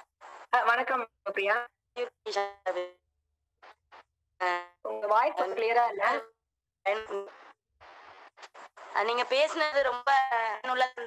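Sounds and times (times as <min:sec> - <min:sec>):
person speaking over voice call: 0:05.0 - 0:06.2.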